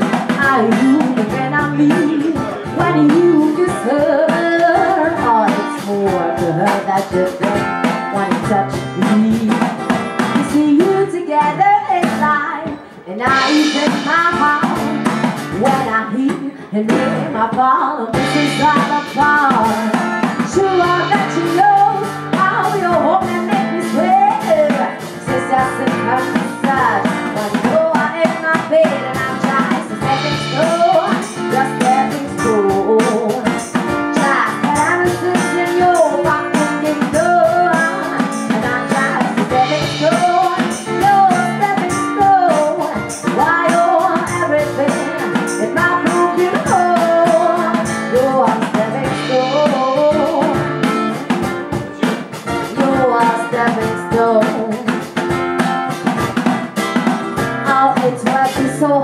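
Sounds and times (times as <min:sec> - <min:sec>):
steady percussion beat: 0:00.0 - 0:10.6, 0:13.3 - 0:15.9, 0:18.2 - 0:58.8
strummed acoustic guitar: 0:00.0 - 0:12.2, 0:18.1 - 0:59.0
woman singing: 0:00.0 - 0:56.2, 0:57.0 - 0:59.0.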